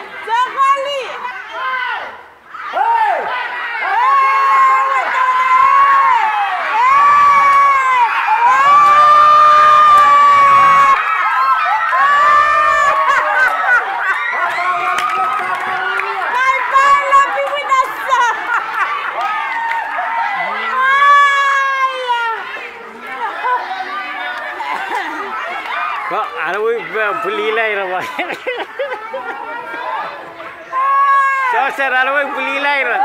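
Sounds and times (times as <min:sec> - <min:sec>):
children screaming and cheering: 0:00.0 - 0:33.0.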